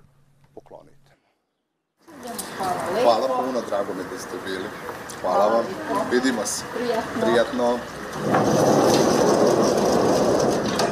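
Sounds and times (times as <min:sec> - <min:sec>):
metal sliding gate rumbling: 0:07.1 - 0:10.9.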